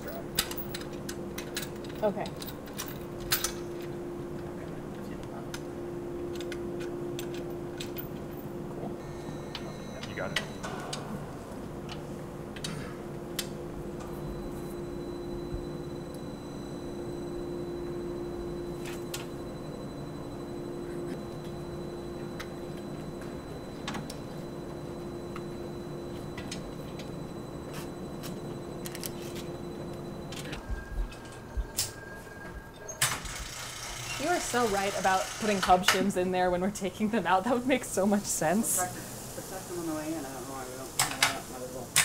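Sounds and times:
low machine hum: 0.0 - 41.9.

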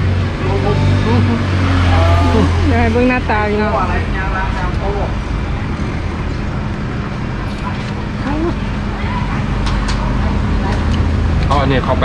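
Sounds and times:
low hum: 0.0 - 12.0
street traffic: 0.0 - 12.0
faint voice: 0.4 - 2.8.

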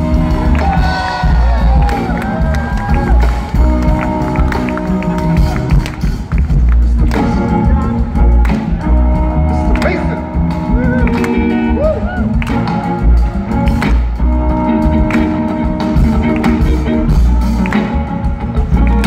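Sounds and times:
crowd voices and cheering: 0.0 - 19.0
live band playing: 0.0 - 19.0.

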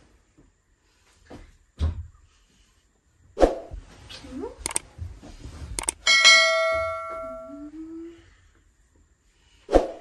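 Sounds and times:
bright bell chime: 6.1 - 7.7.

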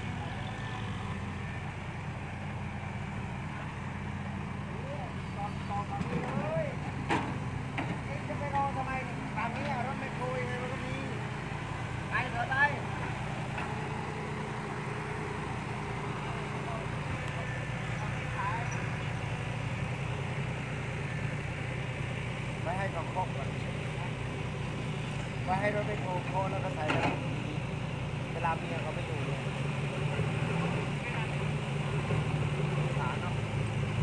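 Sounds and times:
voices calling out: 0.0 - 33.8
diesel truck engine under load: 0.0 - 34.0.

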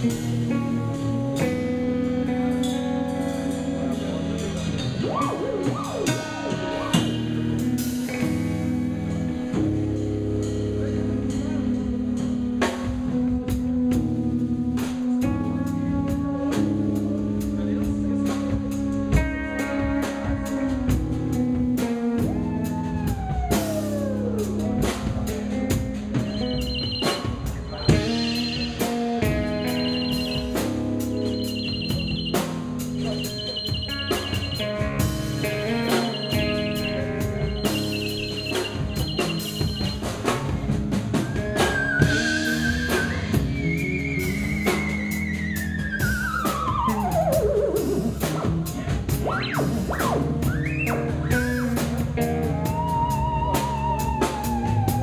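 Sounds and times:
band playing a riff: 0.0 - 55.0
drums and cymbal strikes: 0.0 - 55.0
theremin swooping: 26.2 - 40.4.

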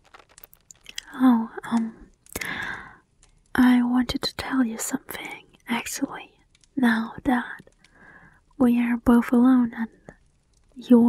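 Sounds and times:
woman whispering: 0.9 - 2.8, 3.6 - 7.7, 8.6 - 10.1, 10.8 - 11.0.

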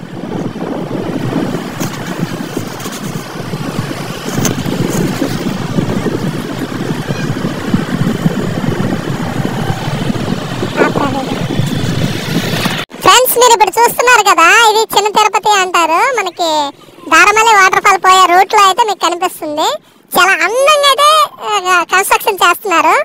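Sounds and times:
motorcycle engine running: 0.0 - 12.8
wind buffeting microphone: 0.0 - 21.2.

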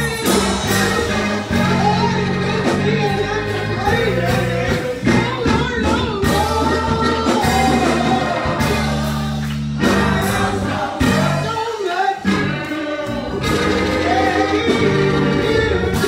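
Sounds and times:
low bass notes: 0.0 - 11.6, 12.2 - 16.0
gospel choir singing with band: 0.0 - 16.0.

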